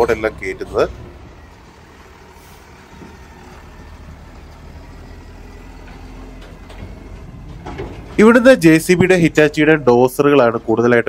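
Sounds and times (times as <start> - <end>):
truck diesel engine rumble: 0.0 - 11.0.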